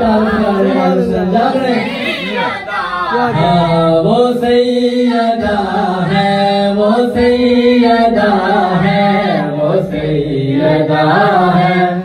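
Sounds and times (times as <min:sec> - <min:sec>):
men and children chanting in unison: 0:00.0 - 0:12.0.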